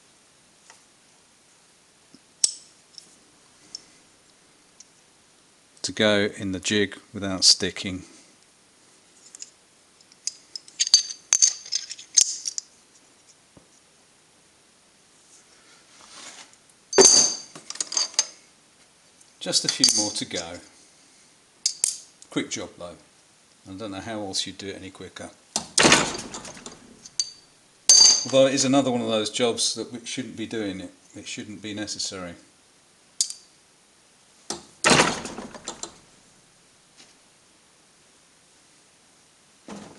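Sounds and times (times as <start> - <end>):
clatter of small clinks: 9.2 - 12.7, 16.9 - 18.4, 19.7 - 20.2, 21.6 - 22.1, 26.1 - 28.4, 33.2 - 33.5
small metal pieces clinking: 10.1 - 12.7, 16.9 - 18.4
loud metallic clank: 25.8 - 26.7, 34.8 - 35.8.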